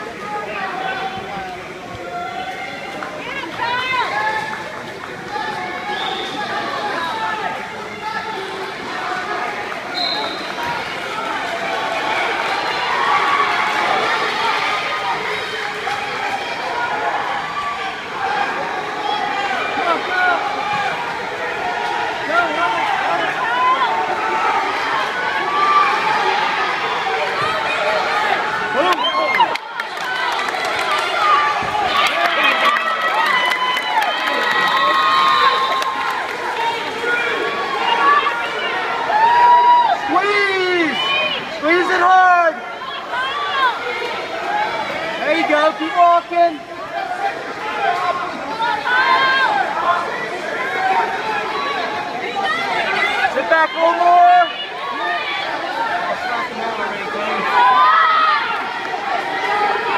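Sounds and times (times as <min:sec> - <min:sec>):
spectators shouting and cheering: 0:00.0 - 0:59.9.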